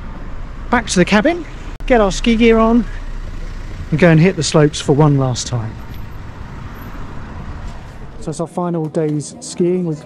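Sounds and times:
road traffic rushing: 0.0 - 10.0.

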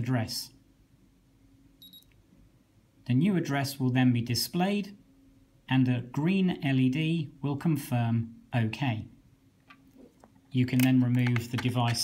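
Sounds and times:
short high-pitched electronic beep: 1.8 - 2.1.

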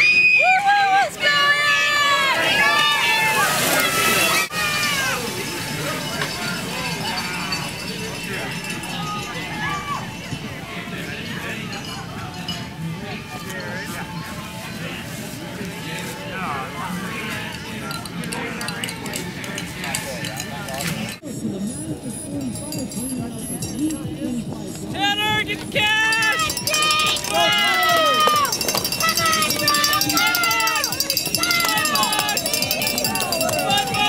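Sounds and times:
crowd shouting and cheering: 0.0 - 20.9, 25.0 - 34.0
quiet voices: 1.0 - 34.0
cowbells clinking: 4.5 - 14.9, 17.2 - 21.2, 21.8 - 34.0.

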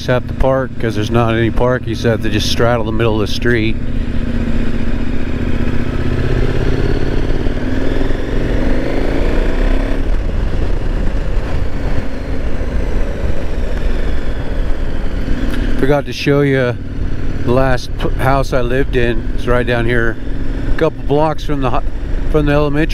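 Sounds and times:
motorcycle engine pulling away: 0.0 - 15.8.

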